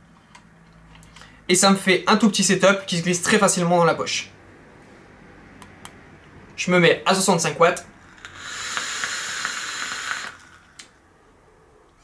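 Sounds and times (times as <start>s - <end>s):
air hissing through atomizer: 7.9s - 11.0s
vape coil sizzling and crackling: 8.0s - 10.9s.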